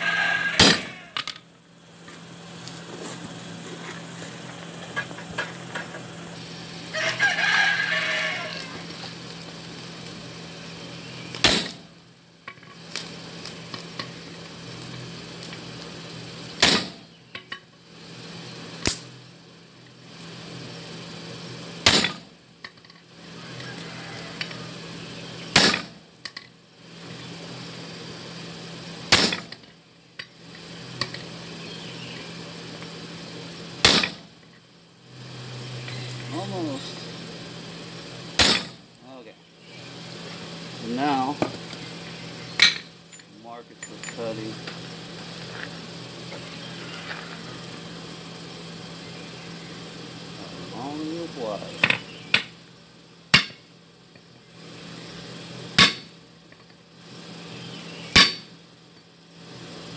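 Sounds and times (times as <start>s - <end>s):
hammer striking steel on anvil: 0.6s - 1.3s, 25.6s - 26.0s, 33.8s - 34.2s, 38.4s - 38.8s, 53.4s - 53.6s, 55.8s - 56.1s, 58.2s - 58.5s.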